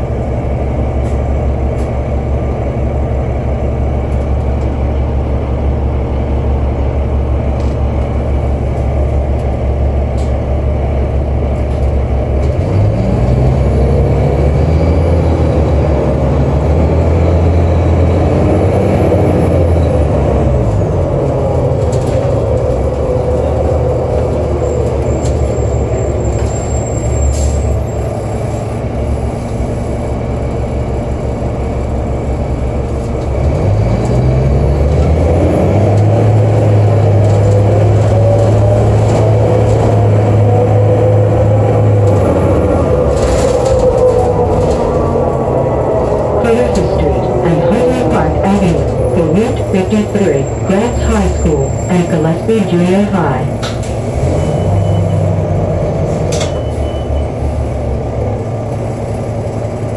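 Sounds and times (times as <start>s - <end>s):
bus diesel engine: 0.0s - 59.9s.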